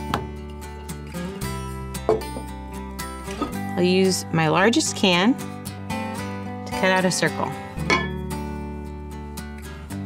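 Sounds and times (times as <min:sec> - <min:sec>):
strummed acoustic guitar music: 0:00.0 - 0:03.8, 0:05.4 - 0:10.0.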